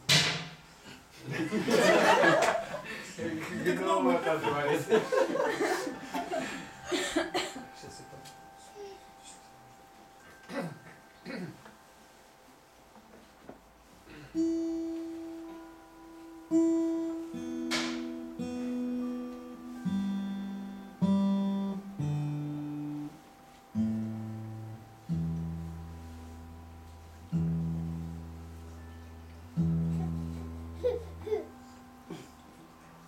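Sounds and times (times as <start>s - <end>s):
plucked string lullaby melody: 3.6s - 33.0s.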